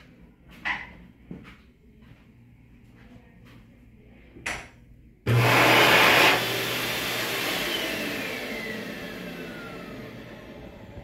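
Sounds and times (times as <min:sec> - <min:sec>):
hand dryer blowing: 0:05.3 - 0:11.0
motor winding down whine: 0:05.3 - 0:11.0.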